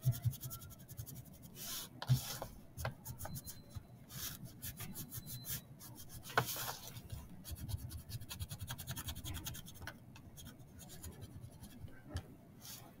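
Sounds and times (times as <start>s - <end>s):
crayon scribbling on paper plate: 0.0s - 2.5s, 7.4s - 9.8s.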